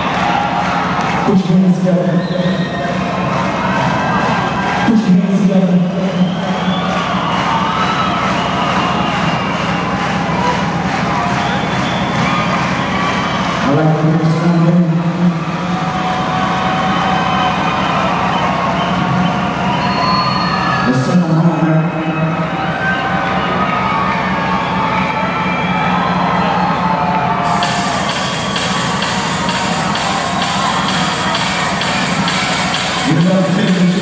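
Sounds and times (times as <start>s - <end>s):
crowd cheering: 0.0s - 34.0s
electronic dance music: 0.0s - 34.0s.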